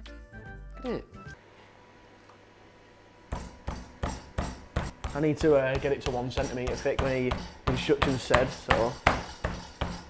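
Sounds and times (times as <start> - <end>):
meat pounded on chopping board: 3.3 - 10.0.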